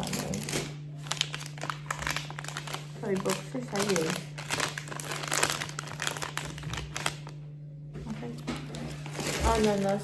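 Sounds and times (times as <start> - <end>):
plastic bag crinkling: 0.0 - 7.6, 8.4 - 10.0.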